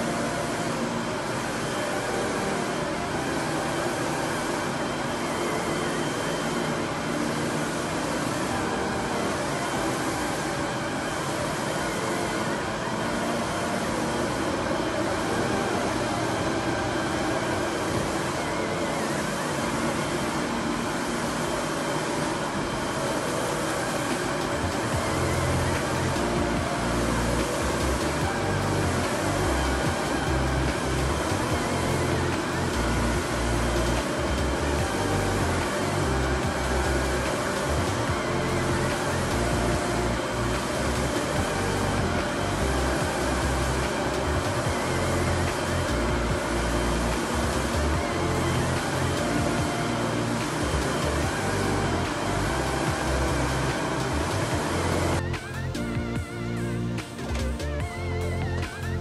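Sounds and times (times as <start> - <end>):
printer running: 0.0 - 59.0
background music with bass line: 24.2 - 59.0.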